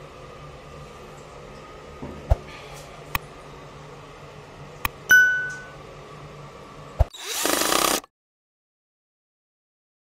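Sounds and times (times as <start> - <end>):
bright bell ding: 5.1 - 5.8
loud noisy whirring: 7.0 - 8.1.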